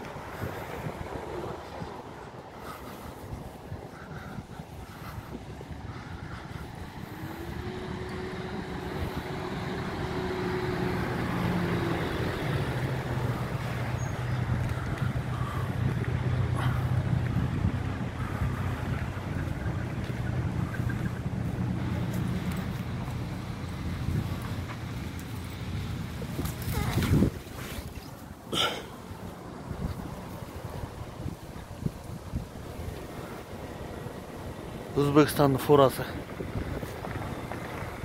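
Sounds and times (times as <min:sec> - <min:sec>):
truck engine idling: 0:00.0 - 0:26.9.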